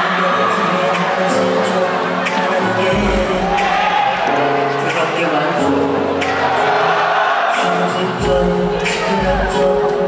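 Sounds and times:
man singing into microphone: 0.0 - 6.8, 7.4 - 10.0
live concert music: 0.0 - 10.0.

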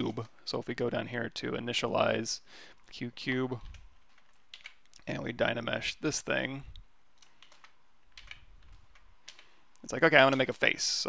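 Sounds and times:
computer keyboard keys clicking: 3.6 - 5.0, 7.2 - 9.5.

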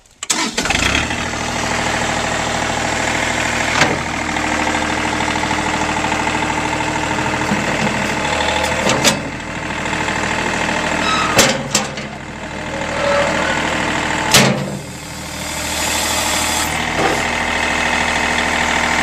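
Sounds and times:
tractor diesel engine running: 0.2 - 19.0.

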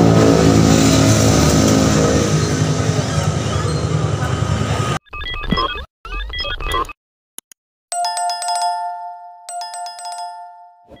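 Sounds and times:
notification bell ringing: 7.9 - 11.0.

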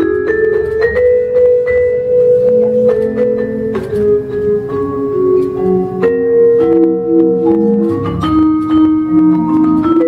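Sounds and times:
vibraphone played with mallets: 0.0 - 10.0.

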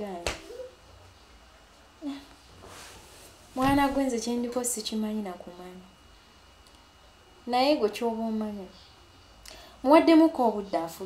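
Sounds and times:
woman speaking: 0.0 - 0.3, 3.6 - 5.9, 7.4 - 8.8, 9.8 - 11.0.

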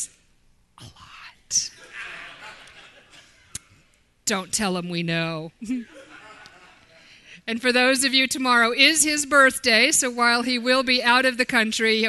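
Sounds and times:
person whispering: 0.8 - 1.8.

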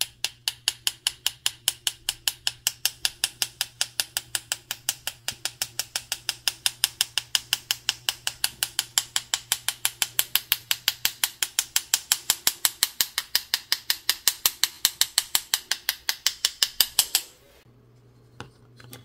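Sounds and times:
paintbrush tapping wooden handle: 0.0 - 17.3.

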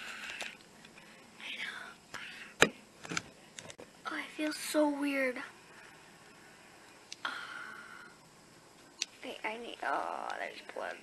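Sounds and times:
girl whispering: 1.4 - 2.0, 4.0 - 5.5.

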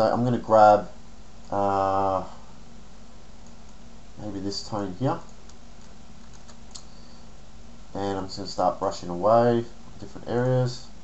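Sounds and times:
steady low hum: 0.0 - 11.0
faint computer clicks: 3.4 - 3.8, 5.2 - 6.9.

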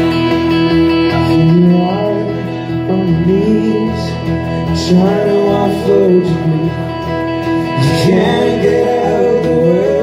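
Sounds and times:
acoustic guitar: 0.0 - 10.0
electric guitar chords: 0.0 - 10.0.

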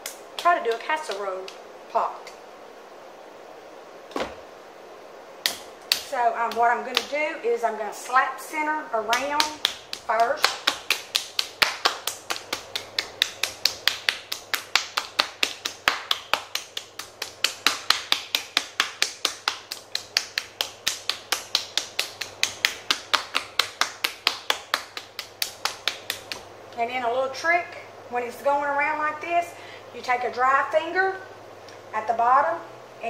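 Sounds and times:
hands slapping clay: 5.4 - 7.1, 9.1 - 26.4.

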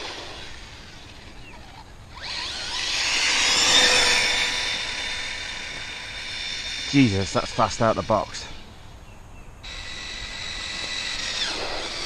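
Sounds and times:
electric motor whine: 0.0 - 9.0, 9.6 - 12.0.

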